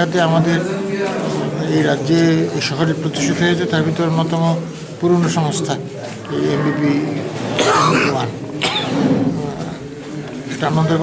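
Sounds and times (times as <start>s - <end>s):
man talking: 0.0s - 8.4s.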